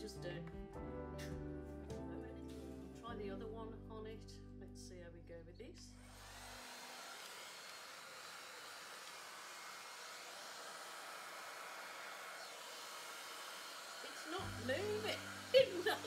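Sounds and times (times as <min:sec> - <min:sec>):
hair dryer blowing: 0:06.0 - 0:16.0.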